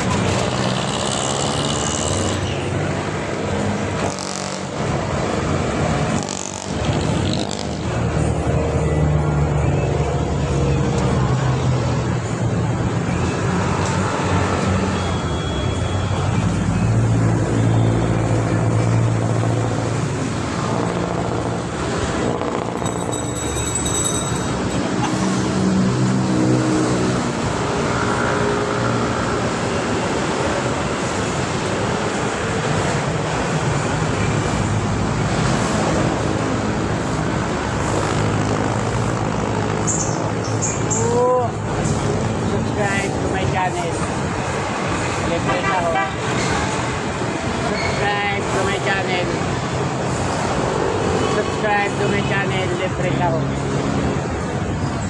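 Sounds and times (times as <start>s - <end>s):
traffic drone: 0.0s - 55.0s.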